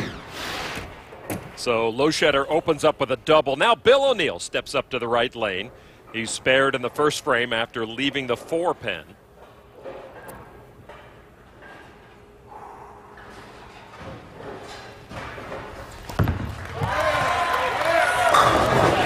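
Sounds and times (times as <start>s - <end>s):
bowling ball rolling: 0.0s - 1.5s
bowling ball thump on lane: 16.1s - 16.6s.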